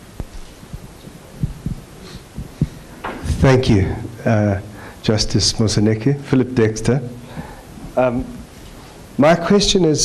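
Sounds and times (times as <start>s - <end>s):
microphone handling thumps: 0.0s - 4.1s.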